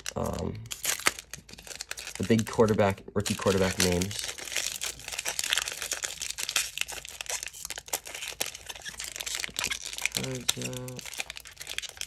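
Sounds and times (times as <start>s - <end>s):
foil wrapper tearing and crinkling: 0.0s - 12.0s.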